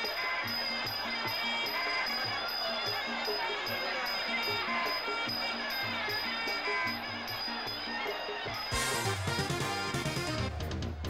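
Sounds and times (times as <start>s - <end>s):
steady drum beat: 8.7s - 11.0s.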